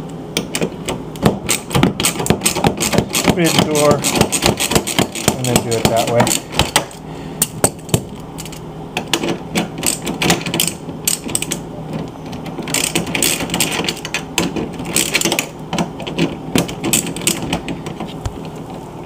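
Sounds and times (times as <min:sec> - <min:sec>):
socket ratchet clicking: 0:01.5 - 0:05.6.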